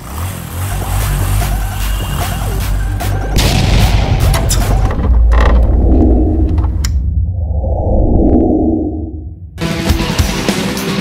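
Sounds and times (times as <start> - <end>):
deep bass rumble: 3.4 - 9.6.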